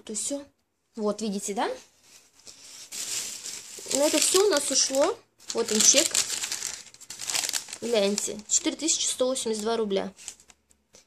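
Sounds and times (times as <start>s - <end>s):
plastic bags rustling: 2.0s - 10.6s.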